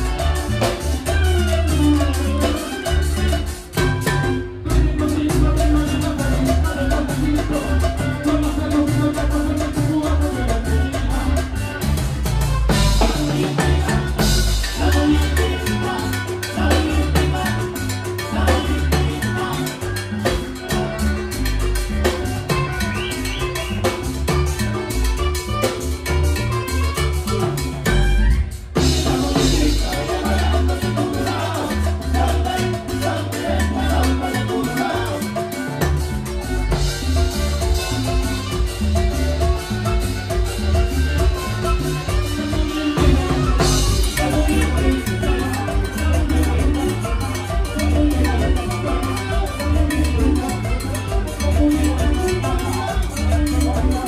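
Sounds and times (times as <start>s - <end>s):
drum kit: 0.0s - 54.0s
electric guitar: 0.0s - 54.0s
hand percussion: 0.0s - 54.0s
live band playing latin dance music: 0.0s - 54.0s
steady bass line: 0.0s - 54.0s.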